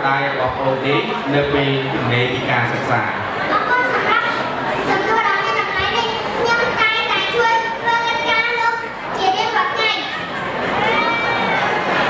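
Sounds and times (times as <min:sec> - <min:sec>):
boy speaking into microphone: 0:00.0 - 0:10.3.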